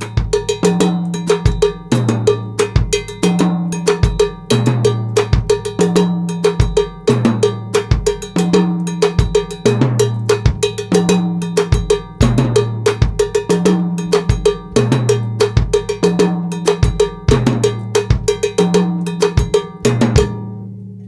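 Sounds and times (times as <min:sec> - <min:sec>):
fast cowbell pattern: 0:00.0 - 0:20.5
drum kit playing: 0:00.0 - 0:20.6
bass drum strokes: 0:00.0 - 0:21.0.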